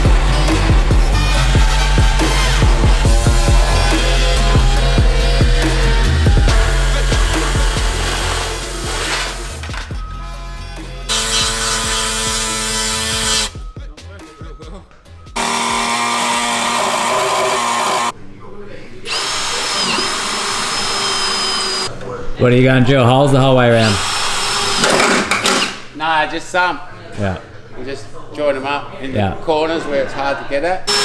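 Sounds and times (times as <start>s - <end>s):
power drill boring through metal: 0.0s - 9.6s, 11.1s - 13.6s, 15.4s - 18.1s, 19.1s - 21.9s, 23.9s - 25.8s
background music: 0.0s - 18.2s.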